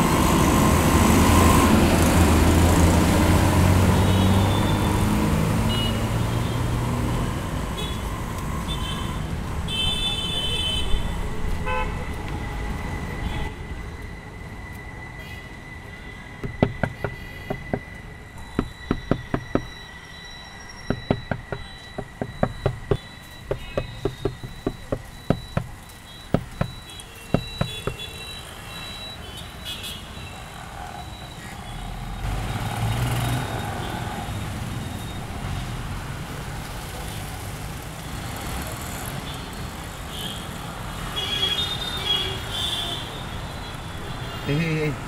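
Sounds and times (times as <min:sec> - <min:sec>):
low traffic rumble: 0:00.0 - 0:28.8
knocks on car window glass: 0:16.4 - 0:19.8, 0:20.9 - 0:28.1.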